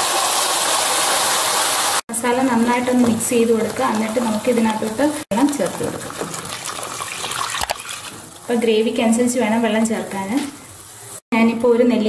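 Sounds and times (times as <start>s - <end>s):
paste sizzling in hot oil: 0.1s - 11.2s.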